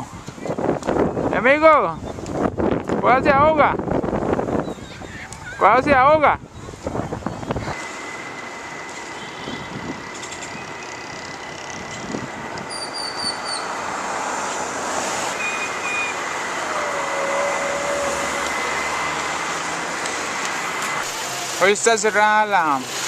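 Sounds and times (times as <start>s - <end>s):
thin high whine: 7.5s - 13.8s, 15.3s - 21.2s.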